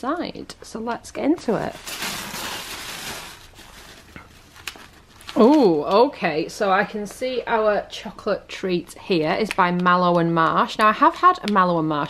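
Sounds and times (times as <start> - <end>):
tissue paper rustling: 1.5 - 5.8.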